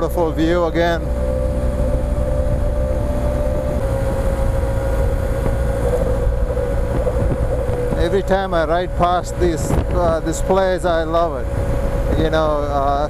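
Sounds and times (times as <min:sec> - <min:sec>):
motorcycle engine cruising: 0:00.0 - 0:13.0
wind rush on microphone: 0:00.7 - 0:13.0.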